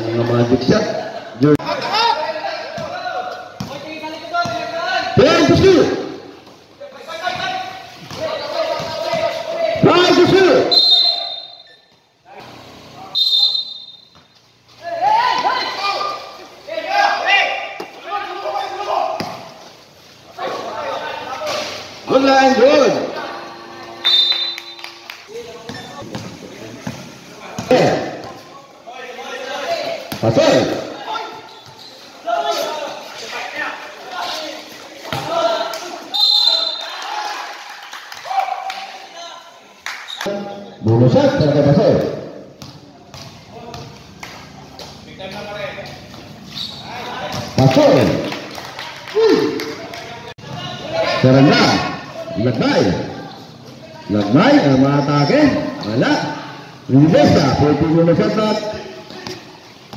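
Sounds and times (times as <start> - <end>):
voices calling out: 0.0 - 41.8
basketball bouncing: 3.6 - 4.7, 35.1 - 35.3, 42.0 - 45.0
sneakers squeaking on court: 11.1 - 14.8, 25.4 - 28.6, 30.0 - 32.7, 42.0 - 45.2, 45.8 - 47.6.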